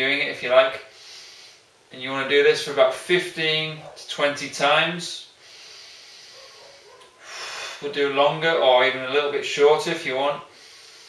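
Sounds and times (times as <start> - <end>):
man breathing: 0.8 - 1.8, 5.3 - 7.9, 10.5 - 11.0.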